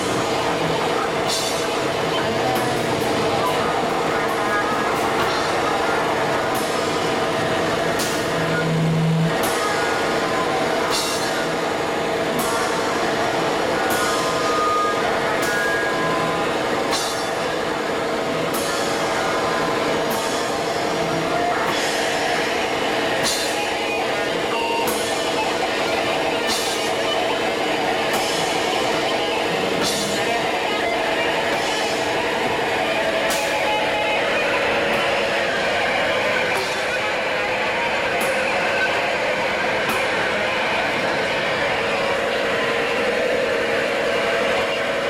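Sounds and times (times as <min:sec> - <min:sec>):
droning wall of amplified sound: 0:00.0 - 0:45.0.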